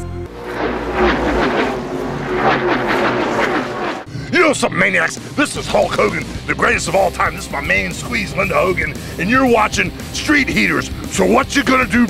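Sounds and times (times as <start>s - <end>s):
loud rushing noise: 0.2s - 4.1s
vehicle engine sound effect: 0.2s - 4.1s.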